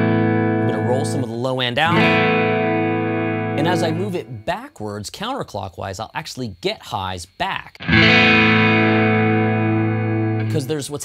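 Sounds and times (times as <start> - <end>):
overdriven electric guitar chord: 0.0 - 1.2, 1.9 - 4.2, 7.8 - 10.6.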